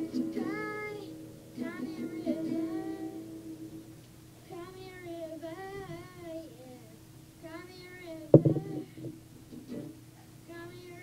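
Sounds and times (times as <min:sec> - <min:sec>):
boy singing softly: 0:00.0 - 0:03.4, 0:04.4 - 0:09.2, 0:10.2 - 0:11.0.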